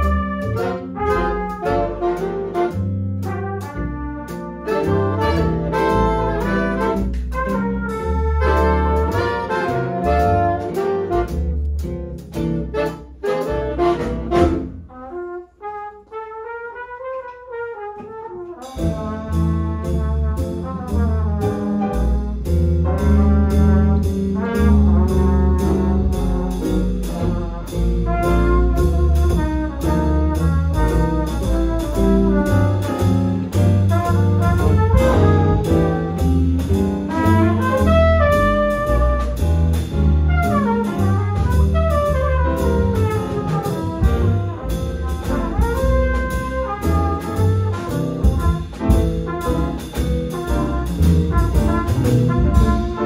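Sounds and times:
big band swing jazz: 0:00.0 - 0:53.0.

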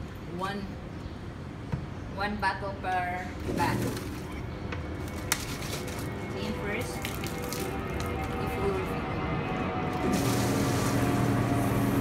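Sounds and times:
pump humming: 0:06.1 - 0:12.0
water running into bottle: 0:06.9 - 0:08.6, 0:09.9 - 0:12.0.

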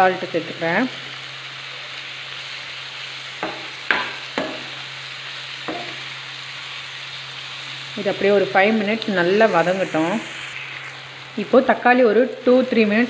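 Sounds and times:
onions and tomatoes sizzling: 0:00.0 - 0:13.0
ladle knocking against pan: 0:03.4 - 0:04.6, 0:05.7 - 0:06.0.

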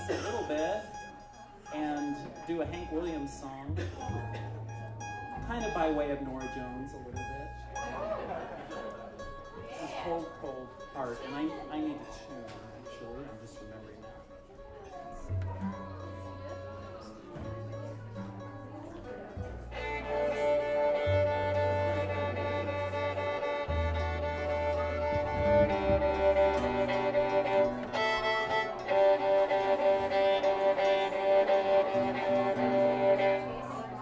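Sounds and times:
fiddle playing long notes: 0:00.0 - 0:08.3, 0:10.2 - 0:34.0
plucked upright bass: 0:00.0 - 0:34.0.

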